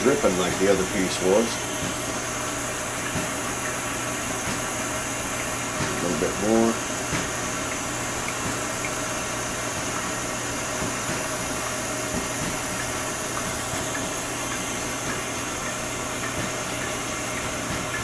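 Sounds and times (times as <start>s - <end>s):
propane torch hissing: 0.0s - 15.5s.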